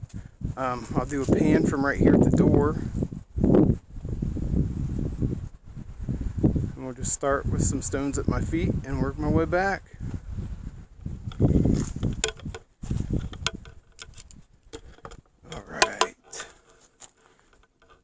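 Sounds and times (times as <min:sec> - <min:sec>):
wind buffeting microphone: 0:00.0 - 0:16.0
handling clicks and knocks: 0:11.3 - 0:18.0.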